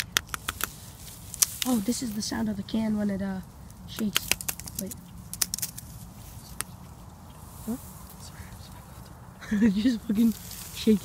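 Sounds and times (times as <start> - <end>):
sharp clicks and crackles: 0.0 - 1.9, 3.9 - 5.9
low steady background noise: 0.0 - 11.0.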